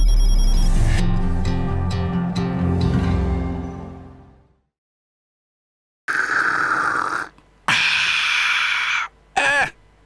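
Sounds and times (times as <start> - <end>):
man slurping tea: 6.1 - 7.4.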